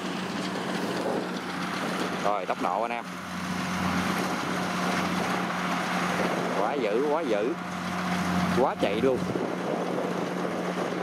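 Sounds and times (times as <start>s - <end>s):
combine harvester running: 0.0s - 11.0s.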